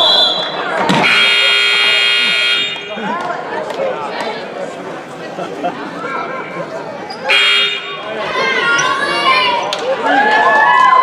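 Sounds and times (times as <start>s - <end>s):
scoreboard buzzer blast: 1.0s - 2.9s, 7.3s - 8.0s.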